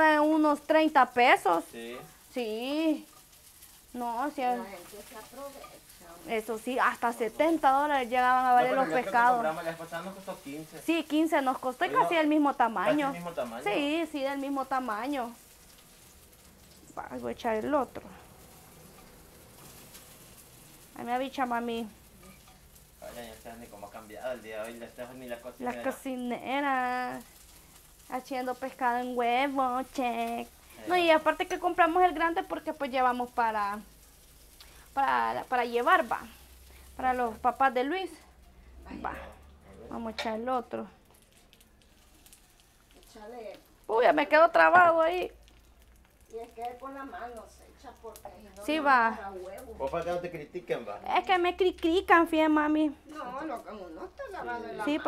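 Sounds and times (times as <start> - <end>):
fish frying in hot oil: 0.0 - 55.0.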